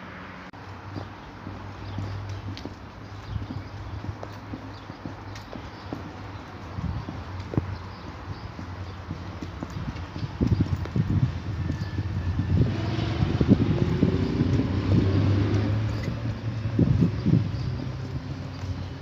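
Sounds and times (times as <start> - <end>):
heavy boots on paving stones: 0.6 - 19.0.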